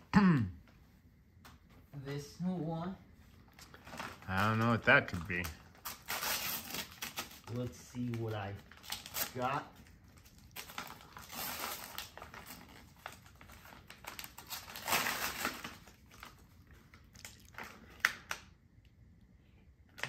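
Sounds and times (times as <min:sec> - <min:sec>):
wrapping paper tearing and crinkling: 0:03.6 - 0:18.5.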